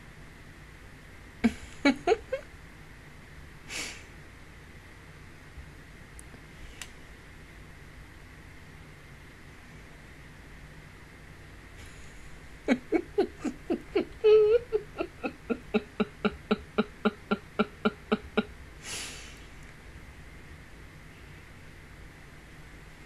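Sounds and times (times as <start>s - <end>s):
woman laughing hard: 1.4s - 2.4s, 11.8s - 19.2s.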